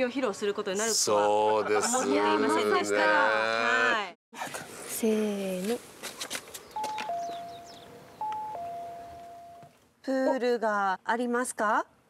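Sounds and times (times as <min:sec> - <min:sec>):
electronic two-tone door chime: 0:06.8 - 0:09.7.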